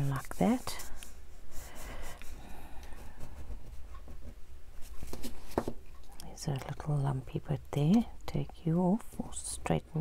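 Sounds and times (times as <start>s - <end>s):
hands rubbing tape on paper: 0.0s - 5.7s.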